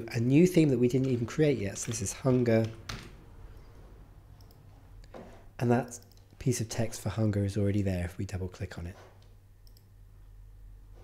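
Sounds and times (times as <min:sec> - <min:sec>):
computer mouse clicks: 0:04.4 - 0:04.6, 0:06.0 - 0:06.4, 0:09.2 - 0:09.9.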